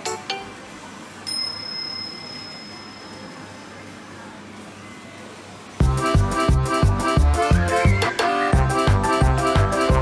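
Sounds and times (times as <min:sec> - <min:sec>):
high bell-like chime: 0:01.3 - 0:03.5.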